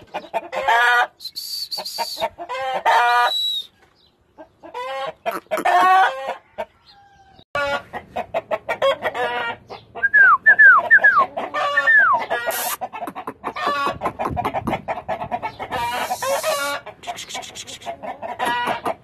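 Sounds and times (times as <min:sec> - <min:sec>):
chickens clucking: 0:00.0 - 0:19.0
roosters calling: 0:00.0 - 0:19.0.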